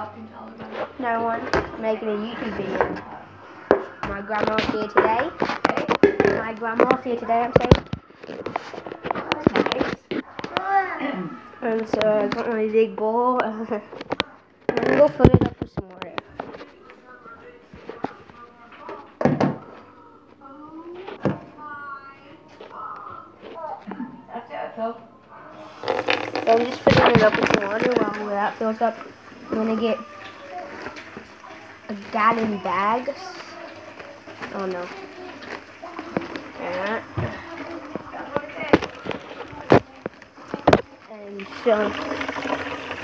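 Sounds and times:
faint speech: 0.0s - 42.3s.

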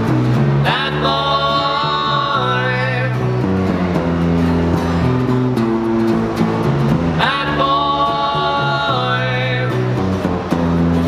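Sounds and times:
electric bass: 0.0s - 11.0s
strummed acoustic guitar: 0.0s - 11.0s
men singing in harmony: 0.6s - 3.2s, 7.2s - 10.0s.

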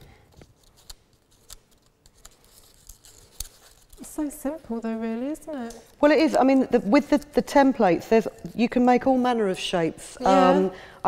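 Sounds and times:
paper rustling and crinkling: 0.3s - 4.8s.

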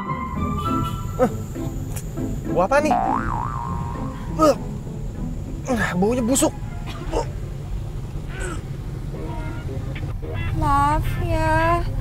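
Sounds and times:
background music: 0.0s - 12.0s
warbling tone: 2.9s - 4.8s
cartoon boing: 3.0s - 4.2s.

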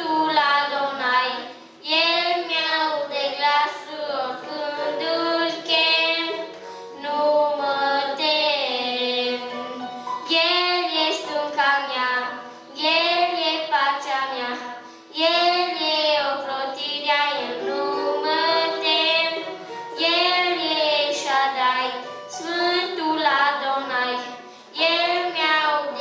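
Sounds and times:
boy singing into microphone: 0.0s - 26.0s
keyboard accompaniment: 0.0s - 26.0s.

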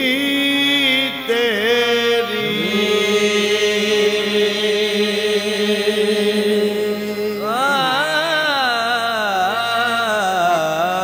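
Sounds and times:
voice singing ornamented phrase: 0.5s - 11.0s.

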